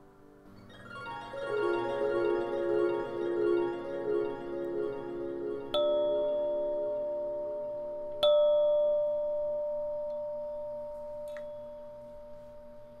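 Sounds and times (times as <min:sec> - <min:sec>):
bell-like chime ringing: 0:00.7 - 0:12.1.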